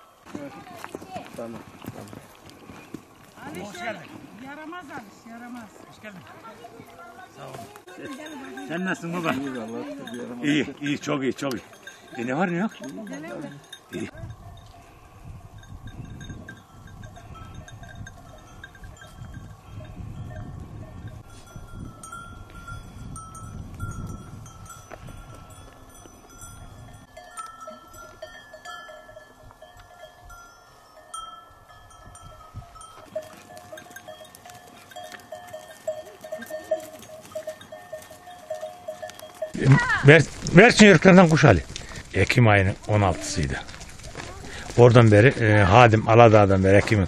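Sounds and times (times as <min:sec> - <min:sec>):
goat bells ringing: 0:00.0 - 0:47.0.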